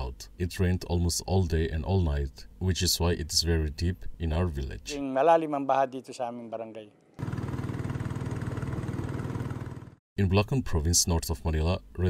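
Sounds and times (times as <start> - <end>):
small boat engine running: 7.2 - 10.0.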